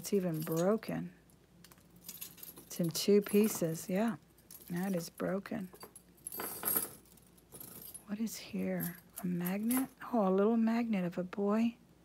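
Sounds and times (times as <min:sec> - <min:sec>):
metal chain links clinking: 0:00.0 - 0:01.0, 0:01.6 - 0:08.1, 0:08.7 - 0:10.0.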